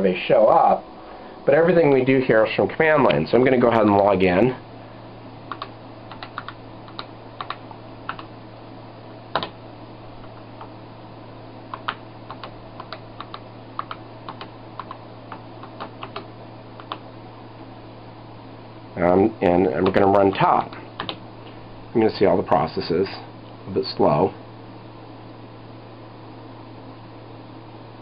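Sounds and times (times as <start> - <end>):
keyboard keystrokes: 5.5 - 8.3, 9.3 - 9.6, 11.7 - 17.0, 19.8 - 21.2.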